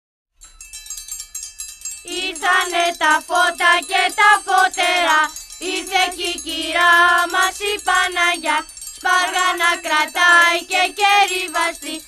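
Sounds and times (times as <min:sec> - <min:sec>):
metal triangle struck rhythmically: 0:00.4 - 0:12.0.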